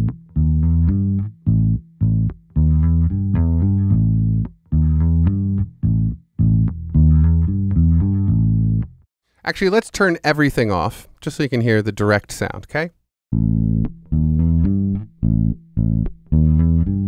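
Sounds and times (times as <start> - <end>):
electric bass guitar notes: 0.0 - 9.0, 13.3 - 17.0.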